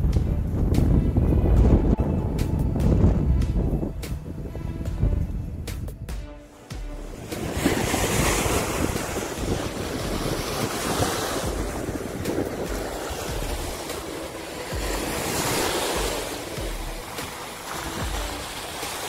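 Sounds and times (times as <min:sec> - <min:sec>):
wind buffeting microphone: 0:00.0 - 0:06.4, 0:07.1 - 0:18.8
small waves breaking on beach: 0:07.2 - 0:19.0.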